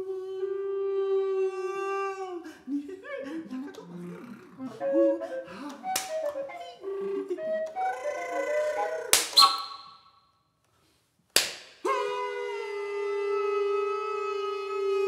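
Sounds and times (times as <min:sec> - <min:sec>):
recorder and voice chamber music: 0:00.0 - 0:09.7, 0:11.8 - 0:15.0
sharp percussive smacks: 0:09.1 - 0:09.6, 0:11.3 - 0:11.9.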